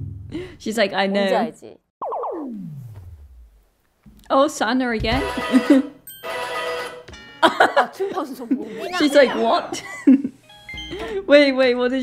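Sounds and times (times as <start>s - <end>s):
women laughing: 5.2s - 6.0s, 7.4s - 11.2s.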